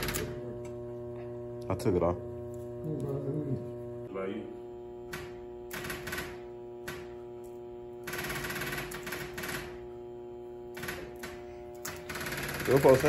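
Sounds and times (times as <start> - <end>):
sharp electrical clicks: 0.0 - 0.4, 5.0 - 9.9, 10.7 - 13.0
fuel pump humming: 0.0 - 13.0
fuel pump rapid ticking: 12.0 - 13.0.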